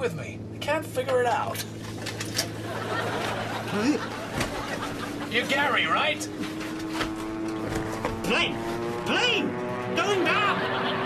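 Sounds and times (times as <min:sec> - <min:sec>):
aircraft piston engines droning: 0:00.0 - 0:11.0.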